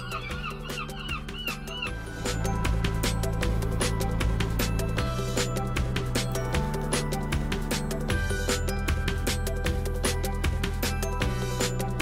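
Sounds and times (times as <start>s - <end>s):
seagulls calling: 0.0s - 2.5s
background music: 0.0s - 12.0s.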